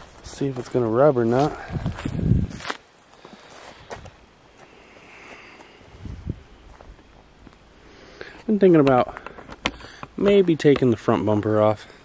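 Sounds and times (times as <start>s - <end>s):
footsteps on gravel: 0.0s - 7.6s, 8.3s - 11.7s.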